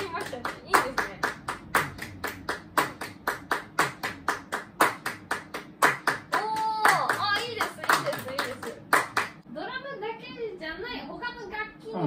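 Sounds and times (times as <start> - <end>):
people clapping in time: 0.0 - 9.4.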